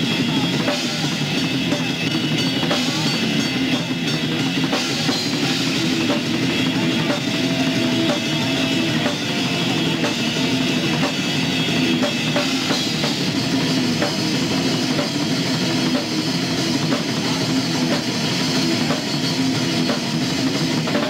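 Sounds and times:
death metal band playing live: 0.0s - 21.0s.

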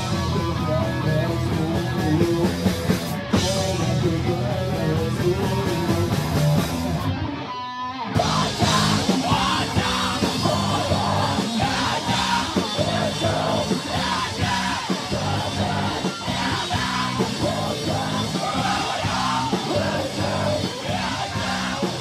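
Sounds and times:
live rock band playing: 0.0s - 22.0s
singer yelling into microphone: 8.2s - 22.0s.

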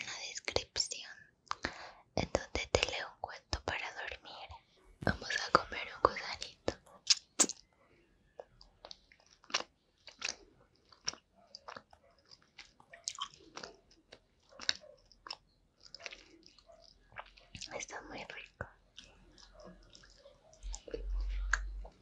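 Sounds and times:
chewing gummy sweets: 8.3s - 22.0s.

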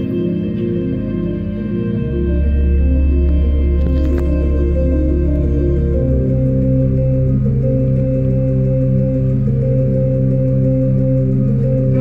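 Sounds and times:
orchestra holding low droning chord: 0.0s - 12.0s.

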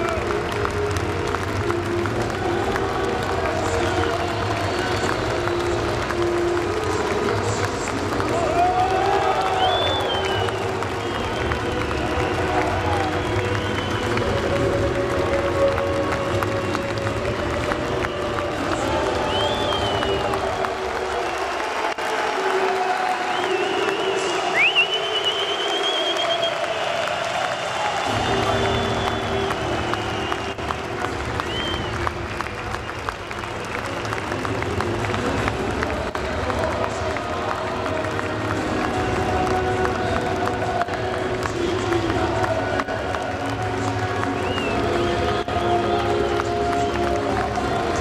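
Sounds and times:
crowd applauding and cheering: 0.0s - 48.0s
music over pa system: 0.0s - 48.0s
scattered clapping: 0.0s - 48.0s.

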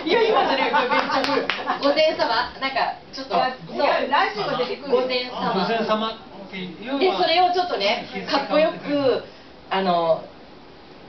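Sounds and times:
hand claps: 1.0s - 1.7s.

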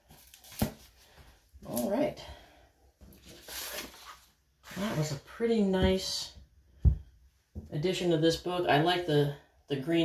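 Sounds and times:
book sliding rustle: 3.1s - 5.3s.

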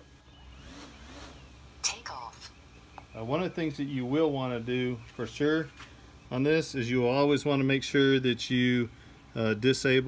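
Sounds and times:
drone motors whining: 0.0s - 1.6s.

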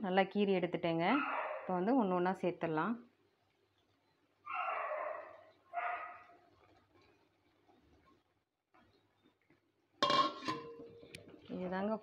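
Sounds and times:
metallic kitchenware clank: 10.0s - 11.2s.

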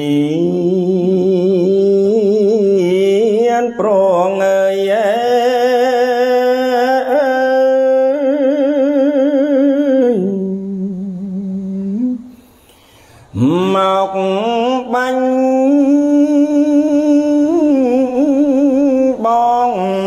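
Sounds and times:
man chanting with vibrato: 0.0s - 12.6s, 13.2s - 20.0s.

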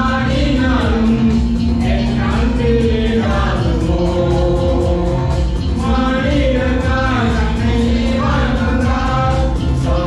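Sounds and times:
amplified instrumental accompaniment: 0.0s - 10.0s
group singing long held notes: 0.0s - 10.0s.

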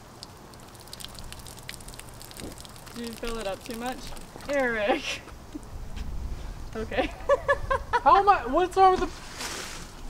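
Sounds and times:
water pouring onto soil: 0.0s - 5.1s.

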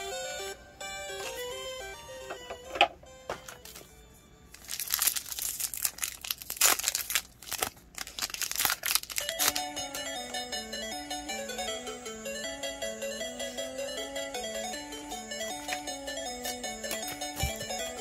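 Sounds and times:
background music: 0.0s - 5.2s, 9.2s - 18.0s
foil wrapper crinkling and tearing: 4.5s - 9.7s.

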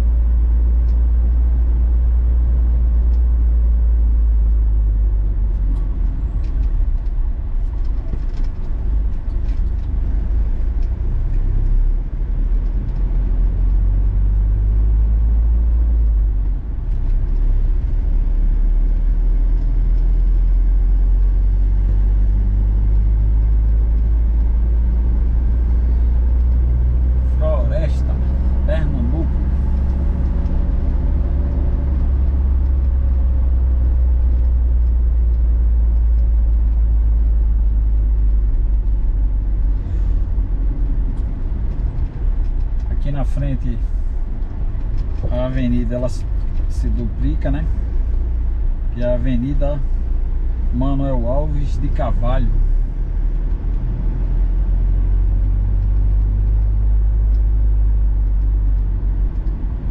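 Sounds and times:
vehicle engine and road noise: 0.0s - 59.9s.

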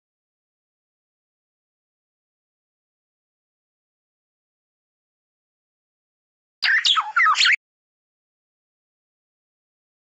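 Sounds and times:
bird whistling song: 6.6s - 7.6s.

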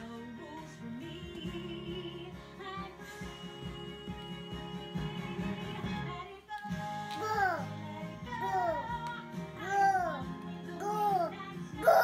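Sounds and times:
recorded music: 0.0s - 12.0s
baby singing: 7.0s - 12.0s.

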